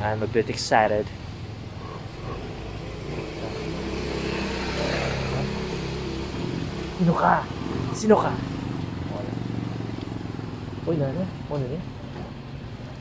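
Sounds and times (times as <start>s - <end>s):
motorcycle tricycle engine running: 1.1s - 13.0s.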